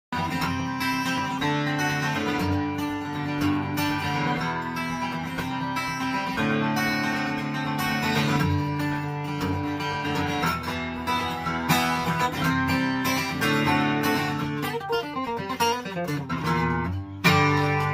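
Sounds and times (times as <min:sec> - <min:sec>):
acoustic guitar flatpicking: 0:00.1 - 0:17.9.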